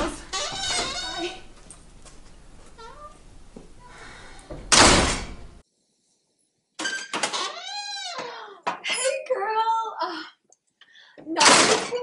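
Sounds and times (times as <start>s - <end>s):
door banging shut: 0.0s - 1.5s, 4.4s - 5.6s.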